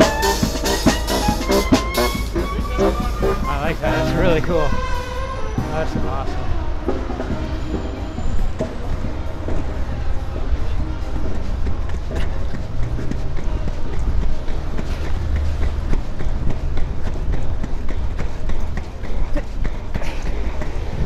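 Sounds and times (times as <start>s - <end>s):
inline skates rolling on asphalt: 8.6s - 21.0s.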